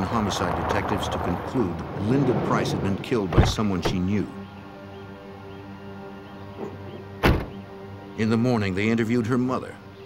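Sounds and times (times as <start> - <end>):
quiet background music: 0.0 - 10.0
car door shutting: 6.6 - 7.6.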